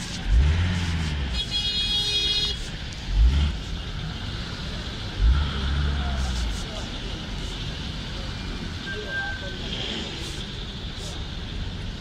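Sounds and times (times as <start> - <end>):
steady traffic hum: 0.0 - 12.0.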